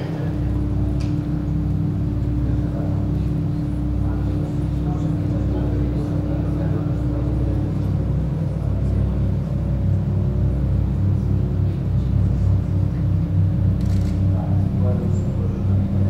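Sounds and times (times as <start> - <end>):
low rumbling drone: 0.0 - 16.0.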